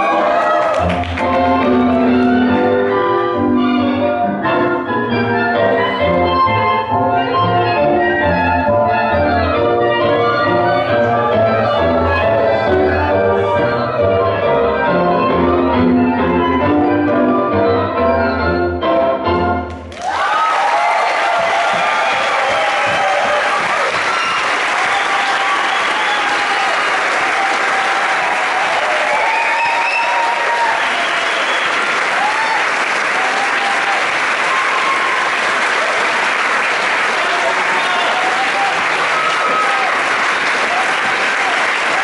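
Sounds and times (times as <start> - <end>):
crowd shouting and whooping: 0.0 - 2.2, 19.9 - 42.0
audience clapping: 0.0 - 2.3, 19.7 - 42.0.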